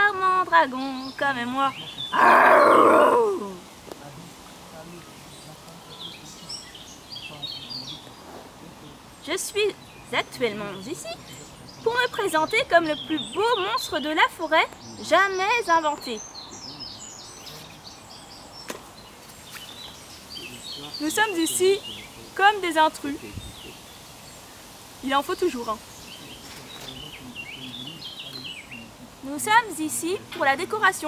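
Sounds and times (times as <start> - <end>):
outdoor background noise: 0.0 - 31.0
songbird chirping: 0.0 - 31.0
person growling like a dragon: 2.1 - 3.6.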